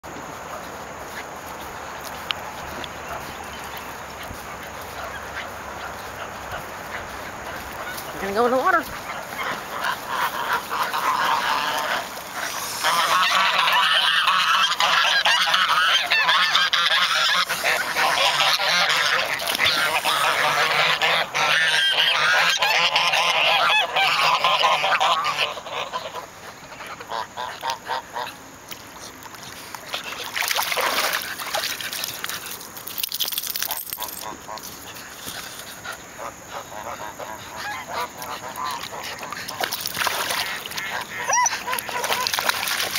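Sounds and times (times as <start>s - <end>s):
geese honking: 0.5s - 28.4s, 35.9s - 42.9s.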